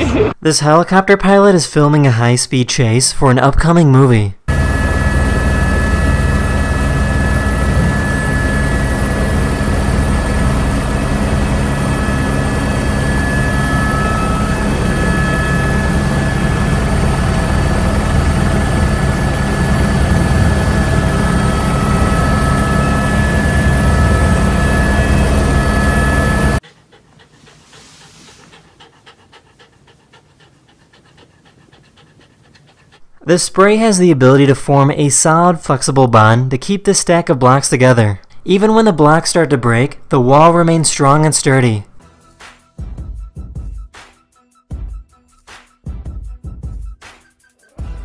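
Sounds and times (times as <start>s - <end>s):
high even whine: 4.5s - 26.7s
helicopter engine and rotor: 4.5s - 33.1s.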